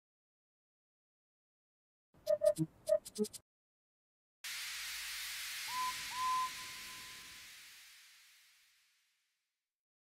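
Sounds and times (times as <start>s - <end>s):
hiss of escaping steam: 4.5s - 9.1s
steam locomotive whistle: 5.6s - 7.4s.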